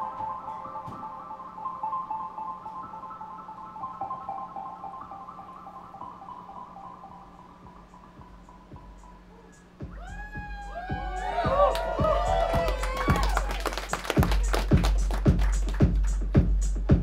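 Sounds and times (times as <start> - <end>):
steady low hum: 0.0 - 17.0
fast repeating synthesizer notes: 4.1 - 17.0.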